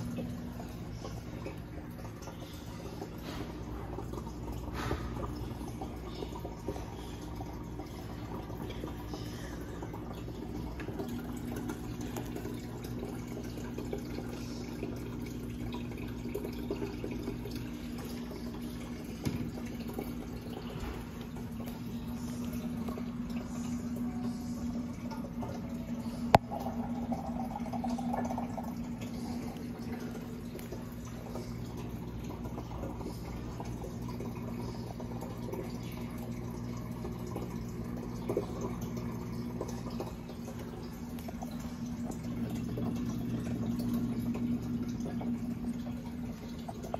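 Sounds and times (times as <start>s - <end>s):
aquarium filter humming: 0.0s - 46.9s
moving water: 0.0s - 46.9s.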